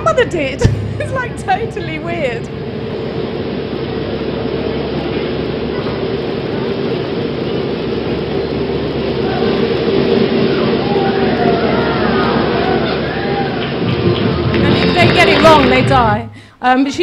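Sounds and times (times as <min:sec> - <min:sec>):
steady rushing noise: 0:00.0 - 0:14.5
steady hum: 0:00.0 - 0:16.5.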